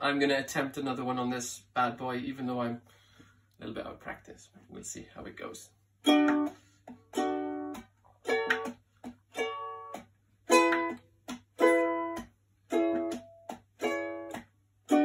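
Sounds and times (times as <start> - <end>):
ukulele chords strummed: 6.0 - 15.0.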